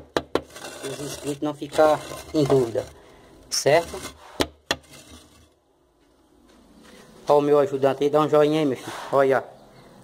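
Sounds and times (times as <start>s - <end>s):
trowel knocking against bricks: 0.0s - 2.8s, 3.9s - 5.4s.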